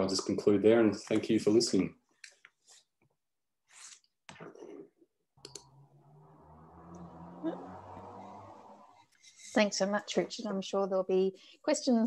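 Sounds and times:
computer mouse clicks: 5.4 - 5.7.

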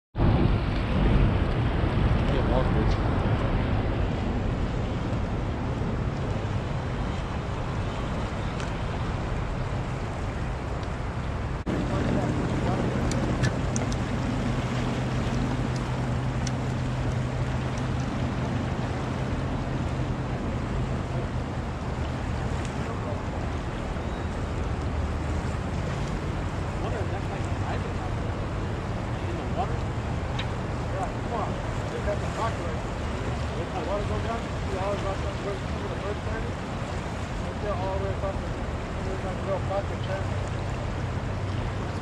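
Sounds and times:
low steady hum: 0.2 - 42.0
river current rushing: 0.2 - 42.0
wind buffeting microphone: 0.2 - 42.0.

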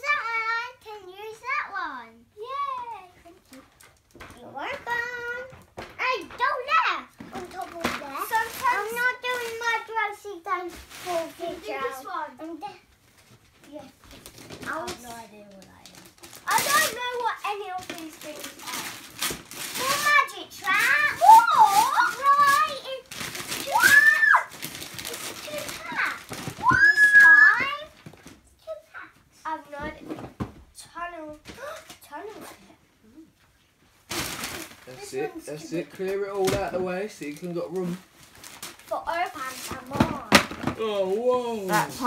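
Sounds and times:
wrapping paper rustling and tearing: 3.5 - 12.1, 13.0 - 28.5, 34.0 - 42.0
children squealing: 23.6 - 24.5, 26.6 - 27.7.

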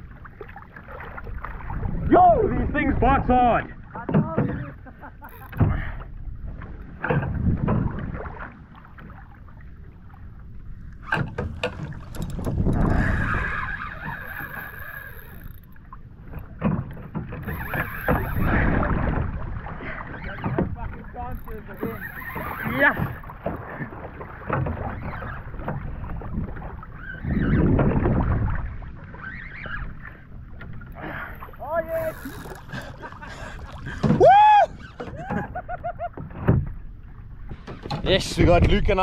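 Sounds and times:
water sloshing: 0.0 - 39.0
wind on microphone: 1.2 - 3.4, 5.4 - 8.5, 10.1 - 15.6, 17.4 - 23.9, 24.7 - 35.7.

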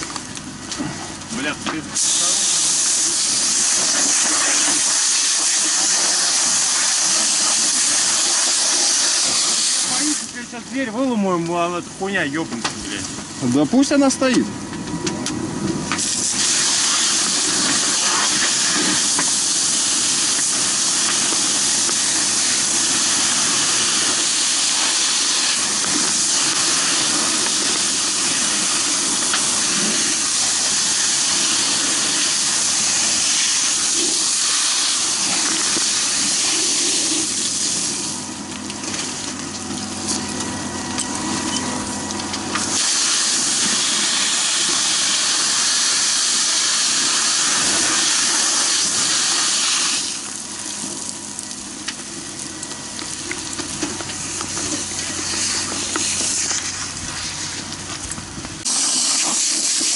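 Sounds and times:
hose water jet hissing: 1.4 - 11.1, 15.9 - 39.3, 41.8 - 51.5, 53.0 - 59.9.

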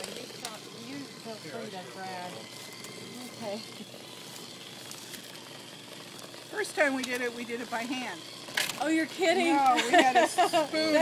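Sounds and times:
electric hand mixer running: 0.0 - 11.0.

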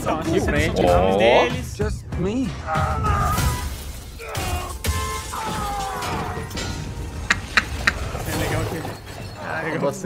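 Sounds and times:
glass and debris shattering: 3.2 - 7.0, 8.0 - 10.0.

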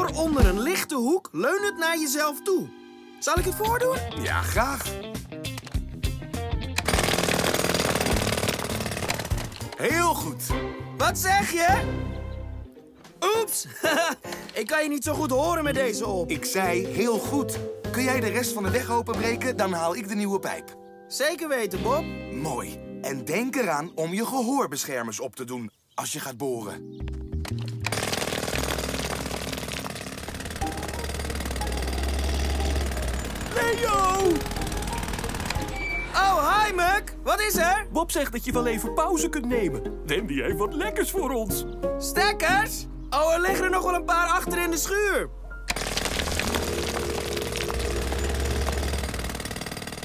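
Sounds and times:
background music: 0.0 - 25.2, 26.0 - 28.9, 30.0 - 49.8
jackhammer hammering asphalt: 6.8 - 9.8, 27.9 - 36.0, 45.7 - 50.0.

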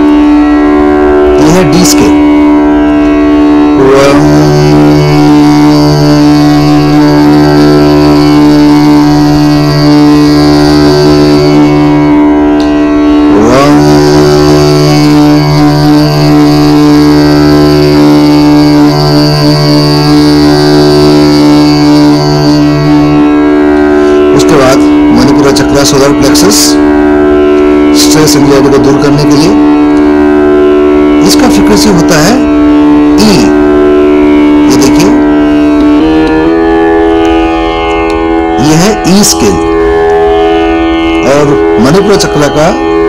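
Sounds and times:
man chanting hummed tone: 0.0 - 43.0
tanpura drone: 0.0 - 43.0.

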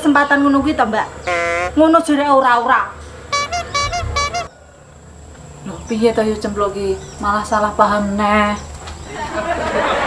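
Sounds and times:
comic horn toots: 1.2 - 1.9, 3.3 - 4.5.

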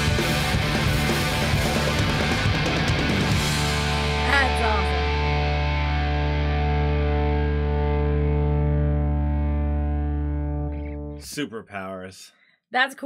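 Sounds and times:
distorted electric guitar chord ringing: 0.0 - 11.2
bass guitar: 0.0 - 11.6.

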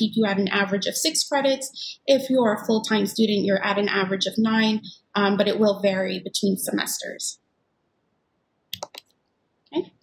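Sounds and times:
computer clicks: 8.7 - 9.2.

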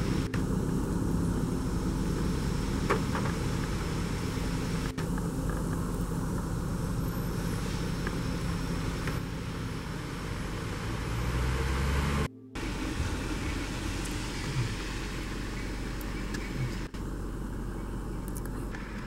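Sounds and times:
car engine running: 0.0 - 19.0
road noise inside car: 0.0 - 19.0.

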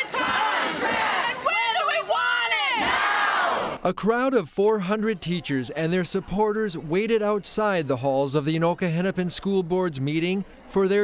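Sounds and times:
crowd chanting in unison: 0.0 - 3.8.

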